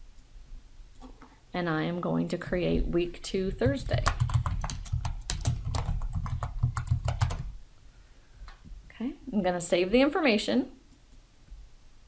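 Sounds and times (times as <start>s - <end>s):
typing on computer keyboard: 3.6s - 7.5s.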